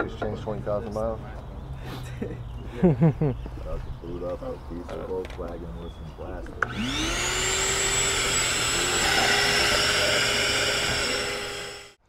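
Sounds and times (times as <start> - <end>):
shop vacuum motor whine: 6.6 - 12.0.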